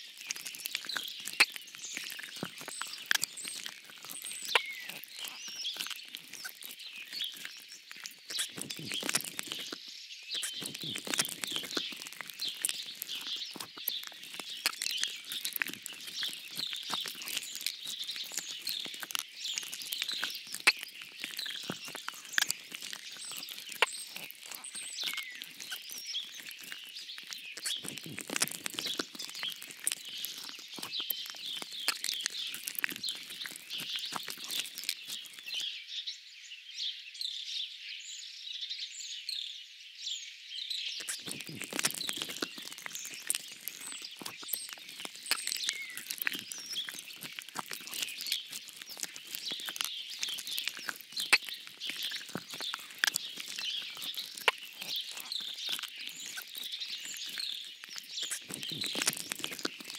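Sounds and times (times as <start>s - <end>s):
songbirds chirping: 0.0s - 59.9s.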